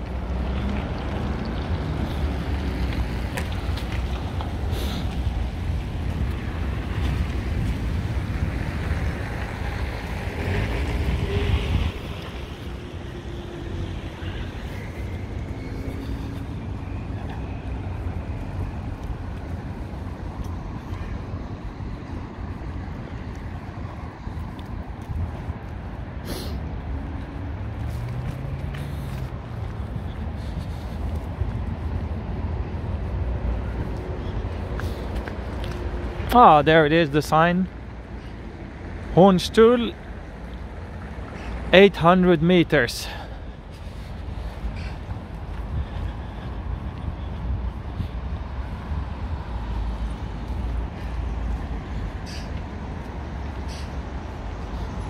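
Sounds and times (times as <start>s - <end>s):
road traffic rumble: 0.0s - 55.0s
vehicle passing: 0.0s - 55.0s.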